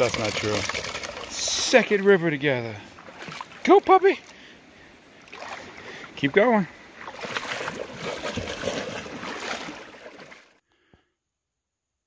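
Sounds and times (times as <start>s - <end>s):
footsteps splashing in river: 0.0s - 4.4s, 5.2s - 10.6s
stream rushing: 0.0s - 10.5s.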